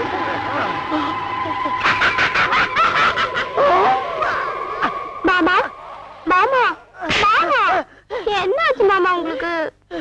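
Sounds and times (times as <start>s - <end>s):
steady high-pitched tone: 0.0s - 7.0s.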